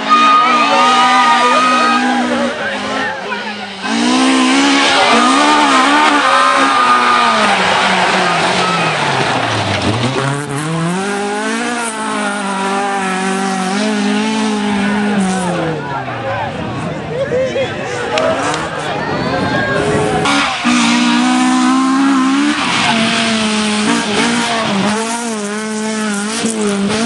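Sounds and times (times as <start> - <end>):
car engine revving hard: 0.0 - 15.9, 19.7 - 27.0.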